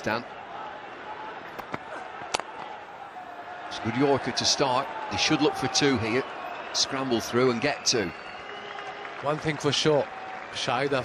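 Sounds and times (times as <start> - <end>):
crowd noise: 0.0 - 11.0
cricket bat hitting ball: 1.6 - 2.7.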